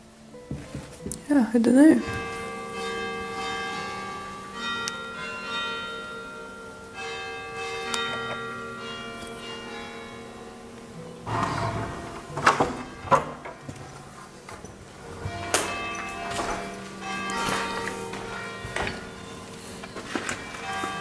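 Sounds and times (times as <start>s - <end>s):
church bells ringing: 1.3s - 21.0s
loud rustling noise: 11.3s - 21.0s.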